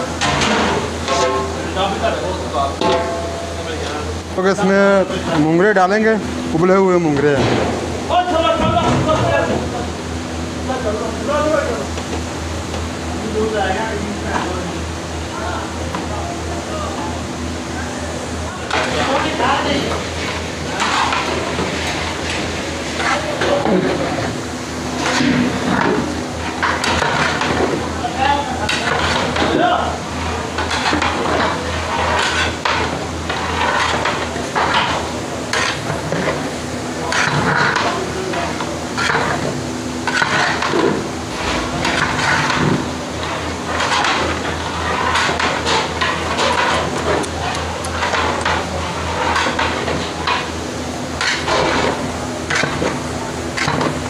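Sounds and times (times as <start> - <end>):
metal paddle scraping pot: 30.2 - 36.4, 37.0 - 50.5, 51.2 - 54.0.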